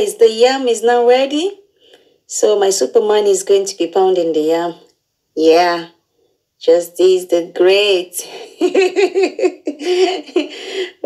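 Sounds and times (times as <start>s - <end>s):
woman laughing: 8.3s - 11.0s.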